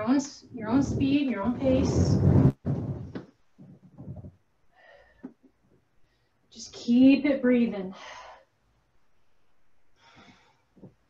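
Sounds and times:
faint shuffling: 0.0 - 4.4
rustling on exercise ball: 0.5 - 4.4.

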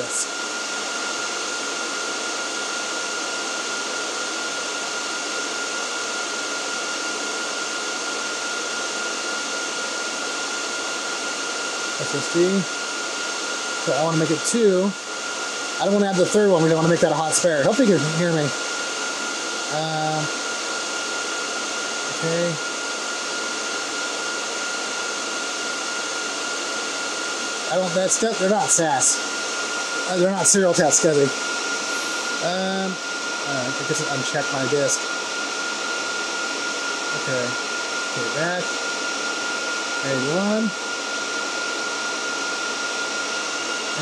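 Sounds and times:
server cooling fans running: 0.0 - 44.0.

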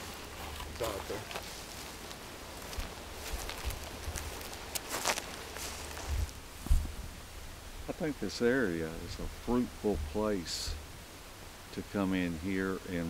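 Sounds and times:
footsteps on trail: 0.0 - 7.0
crackles: 0.0 - 7.2
brush rustling: 0.0 - 8.0
low thumps: 5.9 - 7.2.

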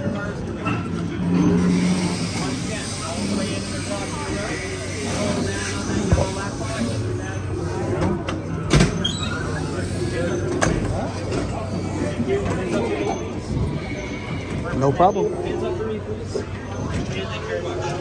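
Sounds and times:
indistinct background voices: 0.0 - 18.0.

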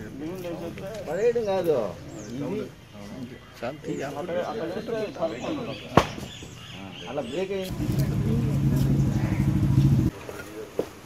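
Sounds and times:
vehicle engine running: 7.7 - 10.1.

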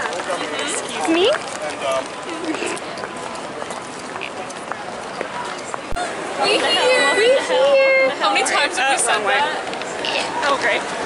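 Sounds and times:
faint voices of people: 0.0 - 11.0
noisy city rush: 0.0 - 11.0.

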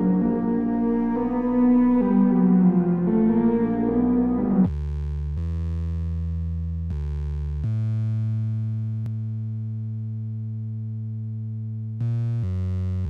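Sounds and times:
low synthesizer tones: 0.0 - 4.7.

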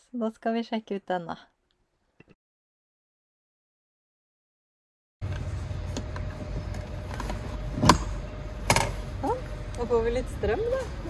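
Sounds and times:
low rumble: 5.2 - 11.0.

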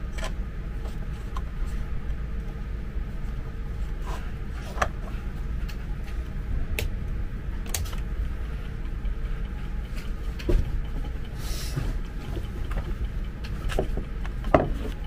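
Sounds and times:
steady low rumble: 0.0 - 15.0.

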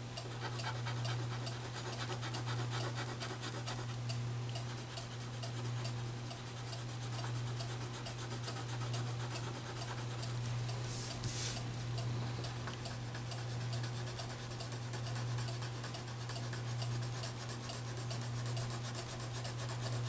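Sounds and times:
crayon scribbling on paper: 0.3 - 3.9, 13.1 - 20.0.

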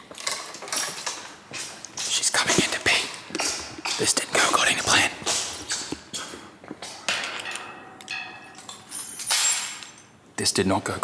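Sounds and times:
metal jangling rattle: 7.2 - 10.2
metallic clinking: 7.2 - 10.2.

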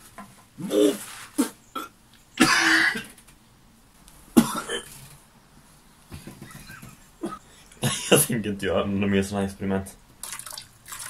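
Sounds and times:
man gagging and coughing: 1.8 - 3.1, 4.4 - 4.9, 7.2 - 8.3.

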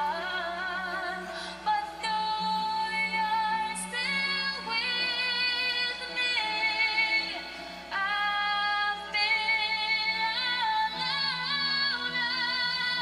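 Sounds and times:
woman singing a slow ballad: 0.0 - 13.0.

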